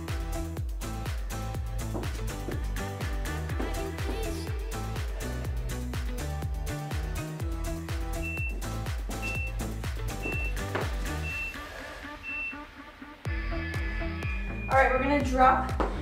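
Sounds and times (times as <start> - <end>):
upbeat background music: 0.0 - 16.0
short high timer beeps: 8.2 - 8.6, 9.2 - 9.6, 10.2 - 10.6, 11.2 - 11.6.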